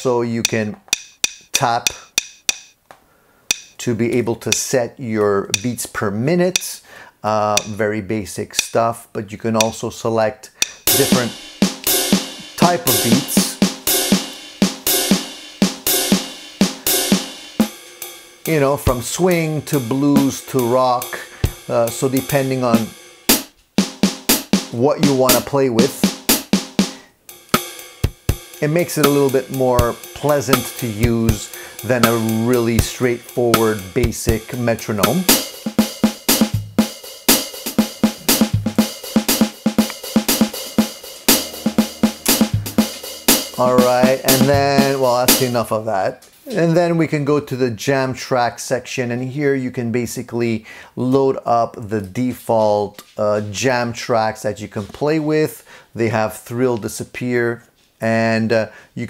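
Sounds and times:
drum machine beat: 0.4 - 2.8, 3.5 - 4.7, 5.5 - 5.8, 10.9 - 45.7.

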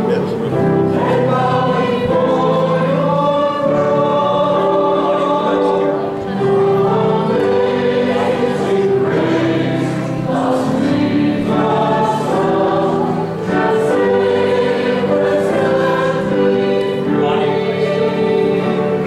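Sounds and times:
church choir singing a hymn: 0.0 - 19.0.

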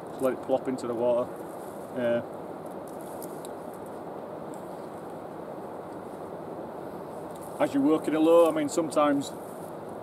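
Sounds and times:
low rushing outdoor noise: 0.0 - 10.0.

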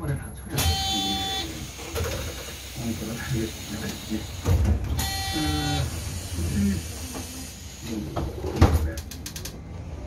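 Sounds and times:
bus cabin low rumble: 0.0 - 10.0.

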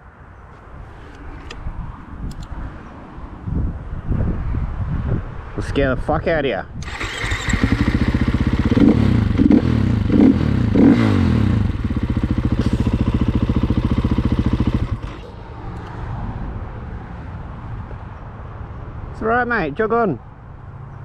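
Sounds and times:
dirt bike engine revving: 6.8 - 15.4.

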